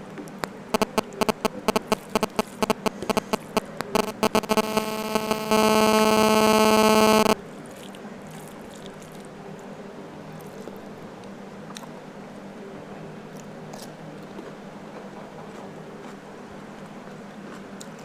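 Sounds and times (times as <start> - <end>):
loud steady interference buzz: 0.0 - 7.4
radio interference clicks: 0.3 - 7.4
faint eating sounds: 7.4 - 18.0.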